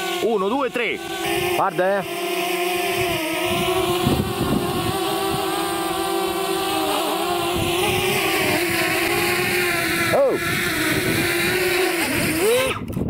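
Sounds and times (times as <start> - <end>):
drone propellers whining: 0.0 - 13.0
wind buffeting microphone: 1.0 - 1.6, 2.6 - 13.0.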